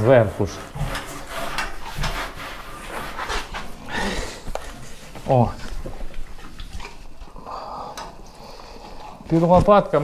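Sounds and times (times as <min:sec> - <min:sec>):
pig snuffling: 0:00.0 - 0:07.4
small scuffs and knocks: 0:09.2 - 0:10.0.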